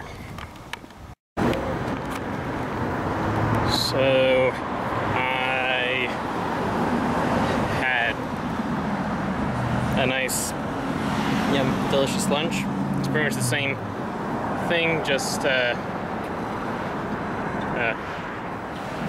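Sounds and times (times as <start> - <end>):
passing cars traffic: 0.0 - 19.0.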